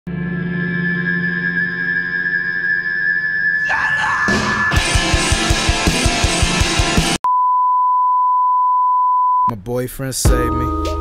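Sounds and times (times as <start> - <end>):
steady electronic beep tone: 0.1 - 9.5
loud rock music: 3.6 - 7.2.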